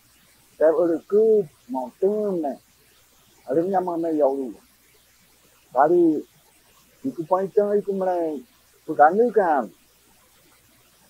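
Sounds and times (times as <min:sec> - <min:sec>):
man speaking: 0:00.6 - 0:02.6, 0:03.5 - 0:04.6, 0:05.8 - 0:06.2, 0:07.1 - 0:09.7.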